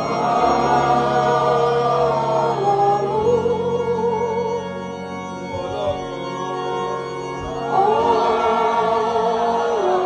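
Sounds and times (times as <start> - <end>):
voices singing a hymn: 0.0 - 4.5, 7.4 - 10.0
sustained organ chords: 0.0 - 10.0.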